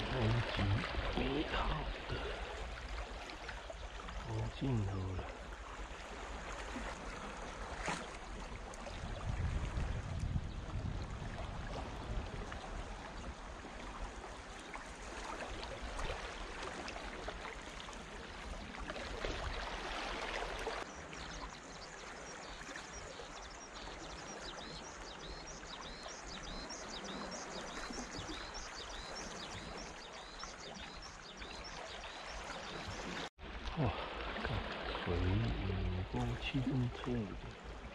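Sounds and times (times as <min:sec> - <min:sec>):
small waves lapping on rocks: 0:00.0 - 0:37.9.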